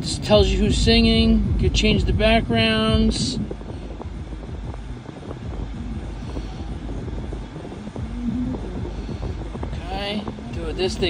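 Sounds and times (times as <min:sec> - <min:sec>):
car cabin rumble: 0:00.0 - 0:11.0.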